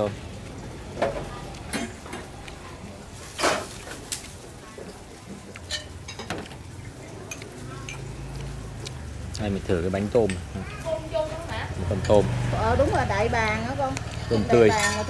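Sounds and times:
ceramic dishes clinking: 0:05.6 - 0:08.2, 0:14.4 - 0:15.0.

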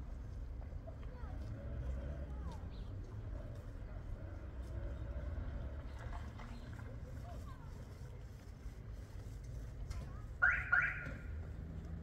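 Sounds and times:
low street rumble: 0:00.0 - 0:12.0
car alarm beeps: 0:10.4 - 0:11.2.

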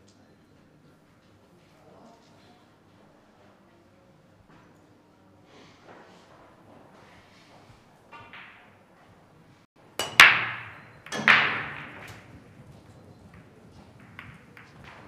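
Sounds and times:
billiard balls clacking: 0:08.0 - 0:08.9, 0:09.9 - 0:15.0
billiard cue striking ball: 0:08.1 - 0:08.8, 0:10.0 - 0:15.0.

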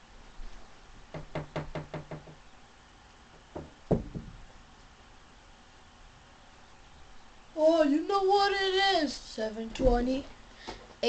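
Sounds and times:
hollow knocks: 0:01.1 - 0:02.4, 0:03.4 - 0:04.5
loud thumps: 0:03.4 - 0:04.6.

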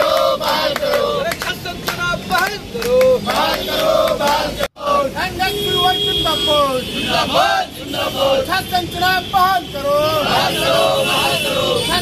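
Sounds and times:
protesters chanting slogans: 0:00.0 - 0:05.4, 0:07.0 - 0:12.0.

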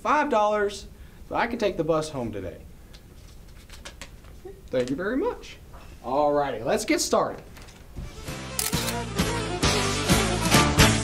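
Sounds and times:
background music: 0:08.0 - 0:11.0
camera shutter clicks: 0:08.5 - 0:09.1.

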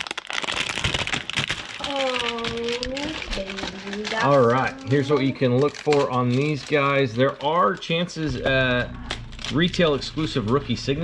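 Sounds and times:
plastic shrink wrap crinkling: 0:00.0 - 0:11.0
drawn-out vocal sound: 0:08.2 - 0:11.0
short steady hum: 0:08.3 - 0:11.0.

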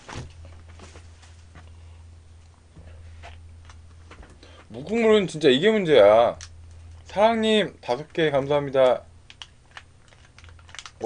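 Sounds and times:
low steady hum: 0:00.0 - 0:11.0
plastic container crackling: 0:09.2 - 0:11.0.

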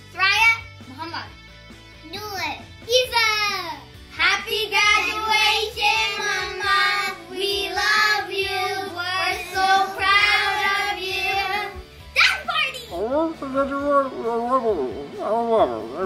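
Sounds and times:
children singing: 0:04.5 - 0:11.8.

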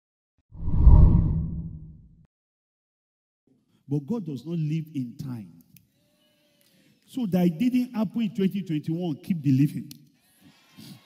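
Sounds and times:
deep bass whoosh: 0:00.6 - 0:02.0.

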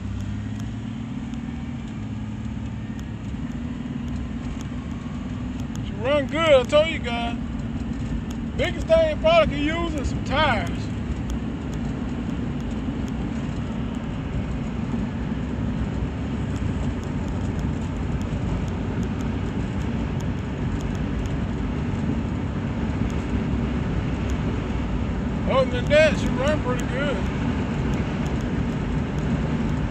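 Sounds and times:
engine and road rumble in car: 0:00.0 - 0:29.9.

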